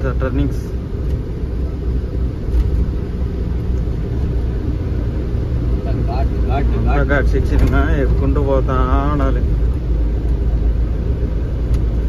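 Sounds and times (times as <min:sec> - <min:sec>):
road noise: 0:00.0 - 0:12.0
truck engine drone: 0:00.0 - 0:12.0.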